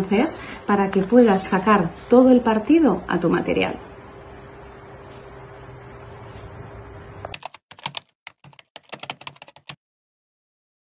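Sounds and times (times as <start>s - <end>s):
keyboard typing clicks: 7.3s - 9.8s.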